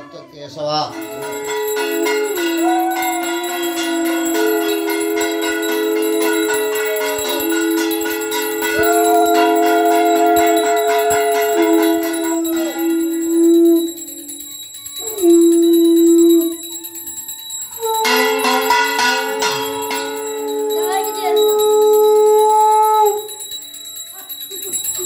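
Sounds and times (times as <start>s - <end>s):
hand bell ringing: 0.8s - 25.0s
conch shell blasts: 1.0s - 16.8s, 17.8s - 23.6s.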